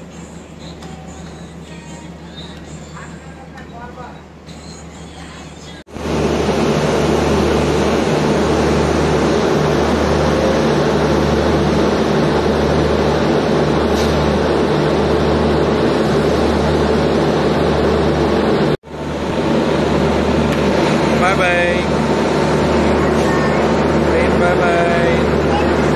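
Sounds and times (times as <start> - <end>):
locomotive blowers humming: 0.0 - 25.9.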